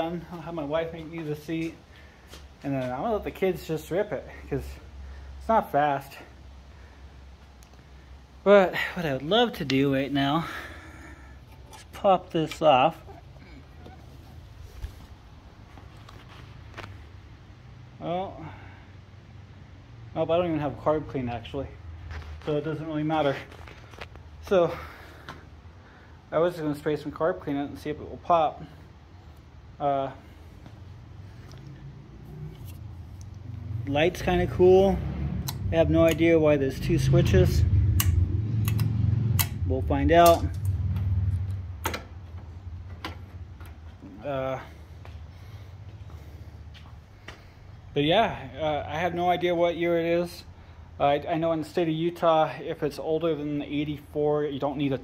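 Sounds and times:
toggle switch clicking: 0:38.0 - 0:39.6.

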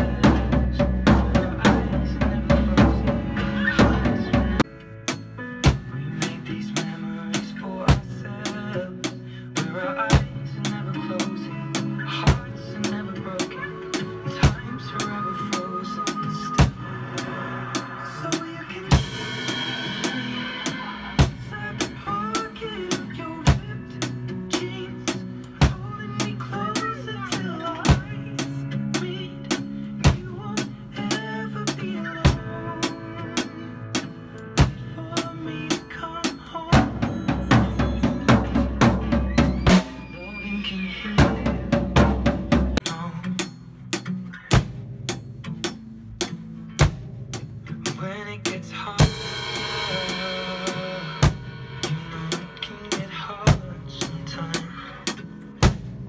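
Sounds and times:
drum kit playing: 0:00.0 - 0:56.0
recorded backing song: 0:00.0 - 0:56.0.

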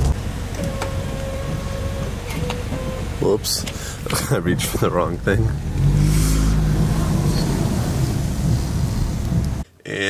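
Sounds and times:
car engine rumbling: 0:00.0 - 0:09.7.

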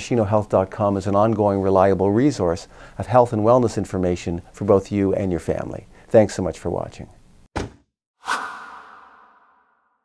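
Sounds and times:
whoosh sound effect: 0:08.2 - 0:10.0.

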